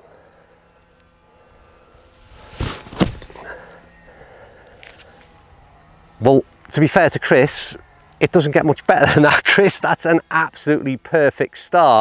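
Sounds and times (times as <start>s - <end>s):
club striking sand: 2.2s - 3.5s
golf club swinging: 2.2s - 3.5s.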